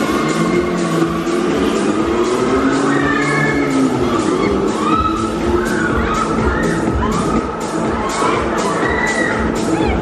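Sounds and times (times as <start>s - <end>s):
loud fairground music: 0.0s - 10.0s
riders shrieking and whooping: 0.0s - 10.0s.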